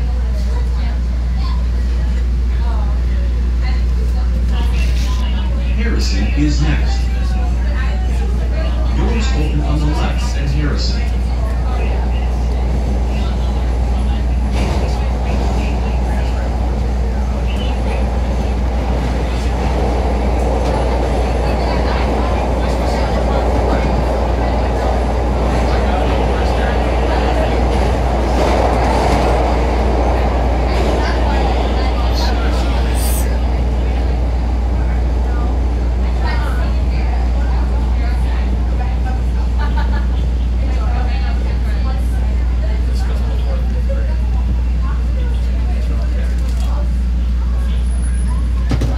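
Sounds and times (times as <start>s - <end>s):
subway train wheels rumbling on rail: 0.0s - 48.9s.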